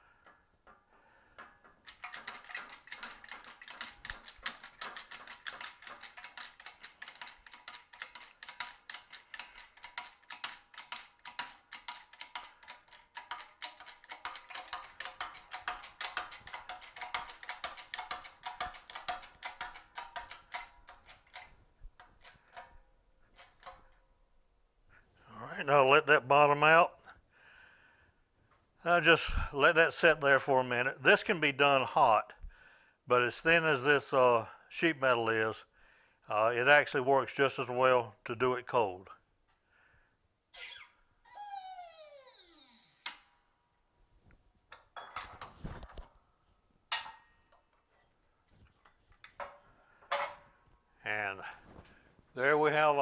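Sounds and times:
hydraulic press pump clicking: 1.4s - 22.8s.

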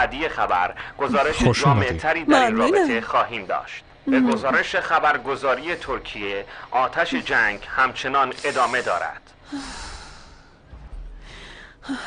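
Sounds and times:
woman breathing softly: 8.4s - 12.0s.

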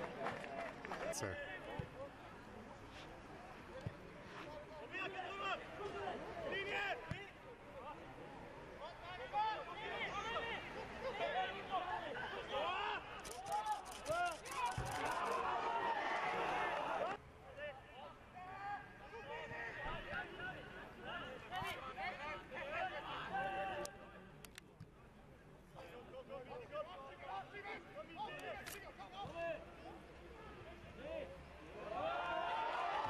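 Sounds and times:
players and spectators shouting: 8.8s - 17.2s, 26.6s - 33.0s
quick sharp clicks: 13.2s - 15.4s.

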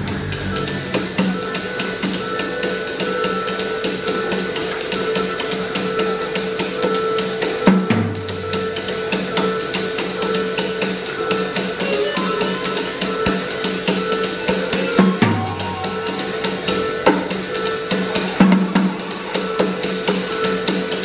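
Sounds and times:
drum kit played with sticks: 0.0s - 21.0s
held keyboard tones: 5.1s - 21.0s.

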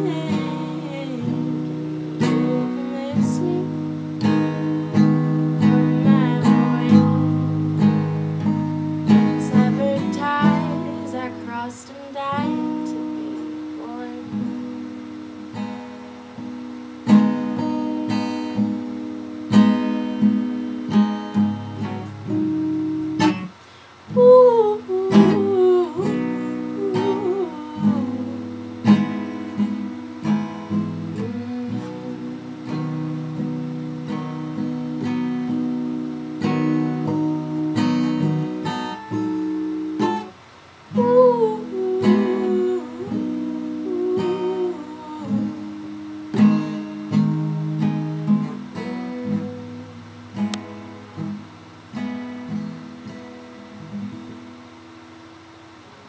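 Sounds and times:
person singing wordless melody: 0.0s - 4.2s, 9.4s - 14.9s, 24.1s - 28.8s, 30.8s - 33.3s, 40.9s - 46.2s
acoustic guitar strumming chords: 0.0s - 56.0s.

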